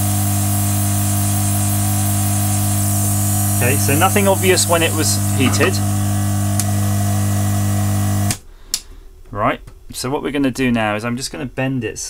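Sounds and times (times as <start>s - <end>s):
electric tool humming: 0.0s - 8.4s.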